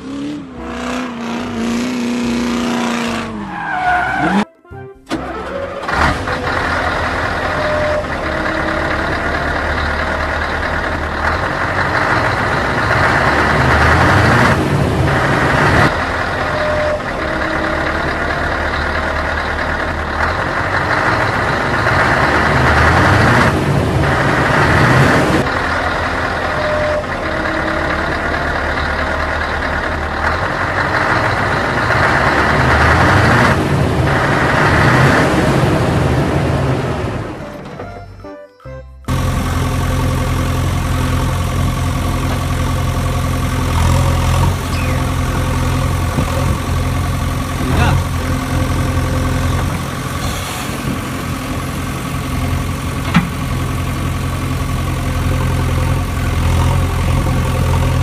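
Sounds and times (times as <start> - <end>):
engine running: 0.0 - 4.4, 5.0 - 38.2, 38.8 - 58.0.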